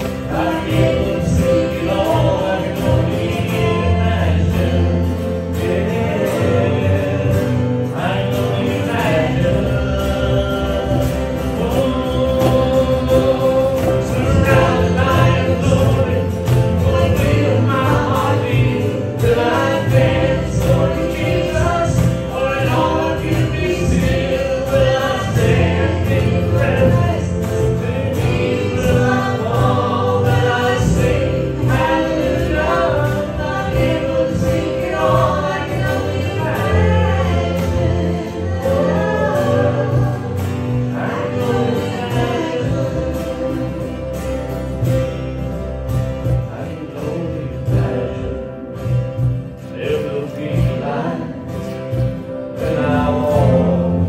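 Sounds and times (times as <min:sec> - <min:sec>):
acoustic guitars strumming: 0:00.0 - 0:54.0
cajon: 0:00.0 - 0:54.0
voices singing together: 0:00.0 - 0:54.0.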